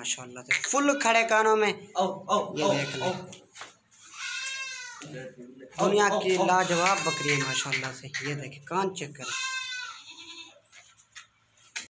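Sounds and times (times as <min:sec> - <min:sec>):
goat bleating: 0:00.5 - 0:01.4, 0:02.5 - 0:03.3, 0:04.0 - 0:05.2, 0:06.2 - 0:08.3, 0:09.2 - 0:10.7.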